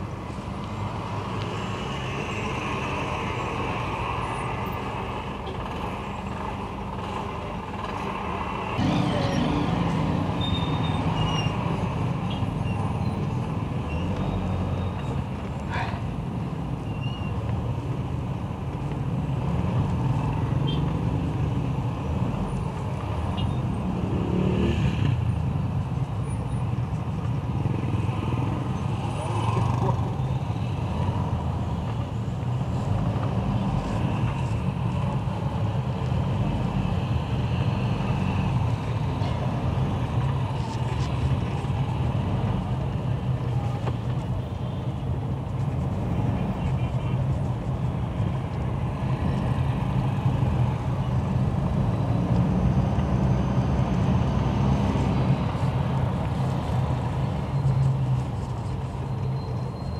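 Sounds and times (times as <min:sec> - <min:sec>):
vehicle engine and road noise: 0:00.0 - 0:59.9.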